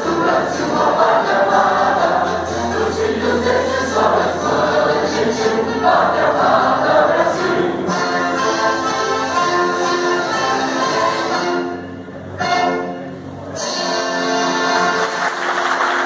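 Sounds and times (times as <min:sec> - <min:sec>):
choir singing with orchestra: 0:00.0 - 0:15.0.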